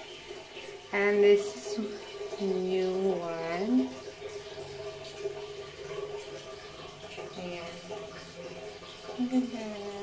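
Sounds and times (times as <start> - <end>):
woman's voice: 0.9 - 4.0, 7.3 - 7.9, 9.2 - 10.0.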